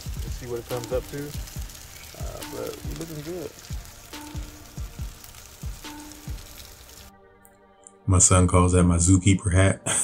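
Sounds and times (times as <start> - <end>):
fish sizzling on a grill: 0.0 - 7.1
frogs croaking: 0.6 - 6.6.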